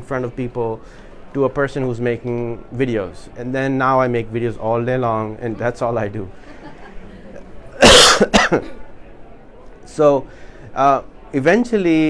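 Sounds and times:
person coughing: 7.8 - 8.9.

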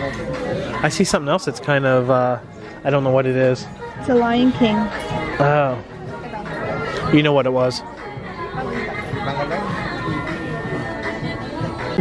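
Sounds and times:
murmur of shoppers' voices: 0.0 - 12.0.

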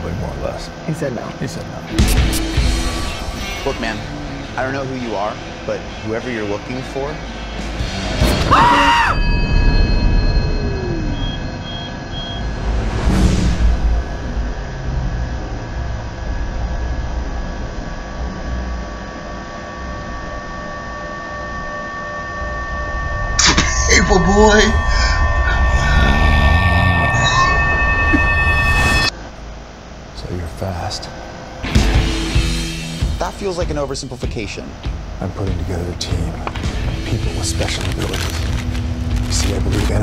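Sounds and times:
high drone: 0.0 - 40.0
high electronic beeps: 9.2 - 13.0, 20.9 - 29.2
low rumble: 9.2 - 33.9.

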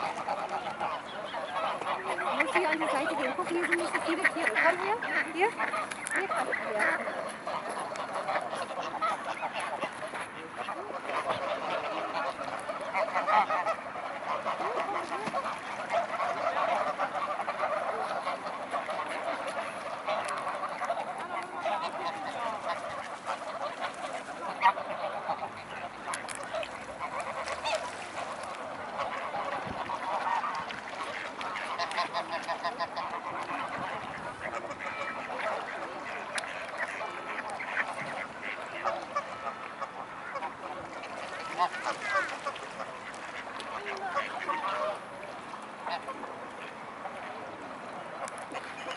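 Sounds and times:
geese honking: 0.0 - 48.9.

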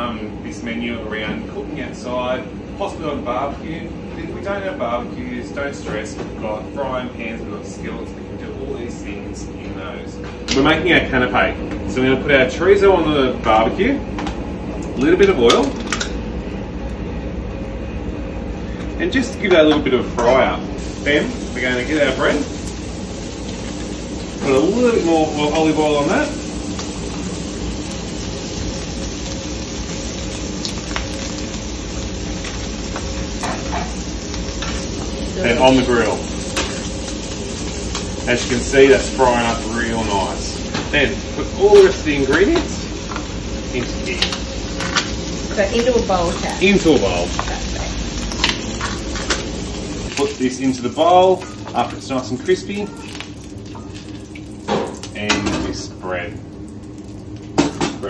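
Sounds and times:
low kitchen hum: 0.0 - 58.0
sausage sizzling on griddle: 20.8 - 57.8.

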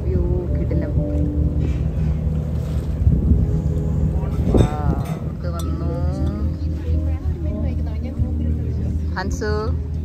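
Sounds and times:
boat engine running: 0.0 - 8.6
wind: 0.0 - 10.0.

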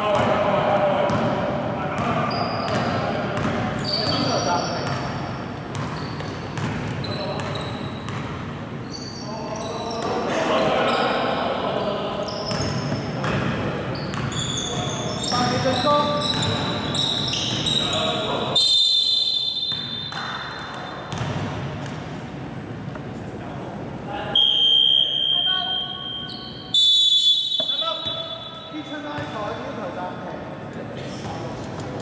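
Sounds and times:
sneakers squeaking on wooden court: 1.9 - 10.2, 10.9 - 22.0, 25.2 - 30.2
basketball bouncing: 2.7 - 4.2, 5.7 - 8.4, 21.1 - 22.0
referee's whistle: 14.3 - 20.2, 24.3 - 28.8.

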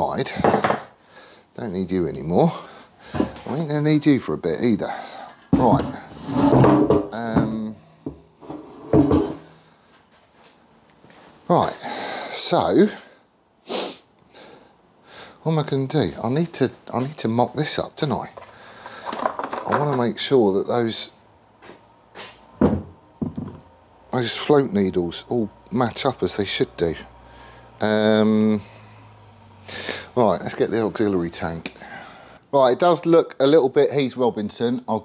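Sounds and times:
drawer shutting knock: 5.6 - 9.4.

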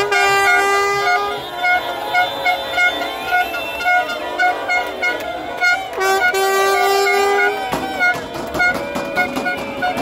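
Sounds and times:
horn toots and long blast: 0.0 - 10.0.

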